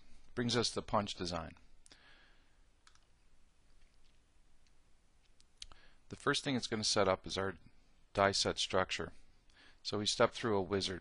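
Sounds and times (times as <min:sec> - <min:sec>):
low room hiss: 0:00.0 - 0:11.0
computer mouse clicks: 0:02.8 - 0:05.8.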